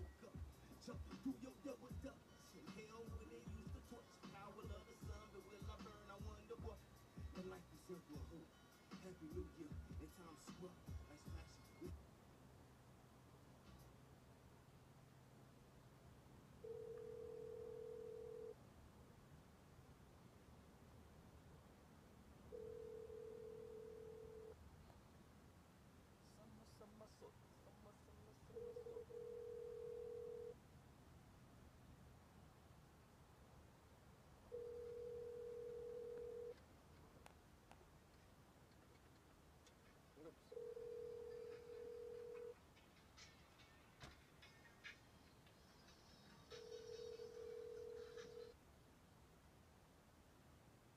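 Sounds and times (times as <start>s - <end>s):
faint low hum: 0.0s - 50.9s
telephone ringback tone: 16.6s - 18.6s, 22.5s - 24.6s, 28.5s - 30.6s, 34.5s - 36.6s, 40.5s - 42.6s, 46.3s - 48.6s.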